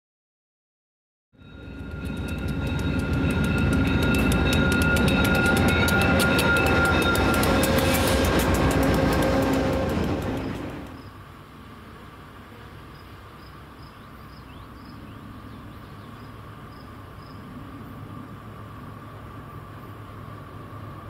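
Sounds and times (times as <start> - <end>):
high steady ringing tones: 1.4 - 11.2
train wheels clattering on rails: 1.5 - 11.1.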